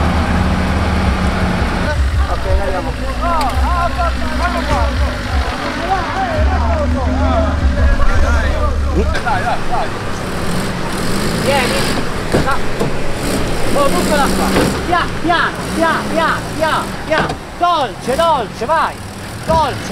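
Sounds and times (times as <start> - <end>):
car engine at low revs: 0.0 - 19.9
faint distant car engine: 0.0 - 19.9.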